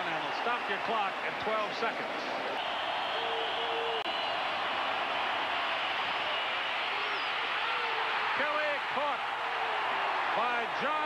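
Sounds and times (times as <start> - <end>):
stadium crowd cheering and yelling: 0.0 - 11.0.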